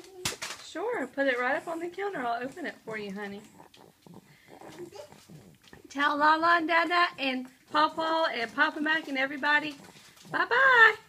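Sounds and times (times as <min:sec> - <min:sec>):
young child vocalizing: 0:03.8 - 0:05.6.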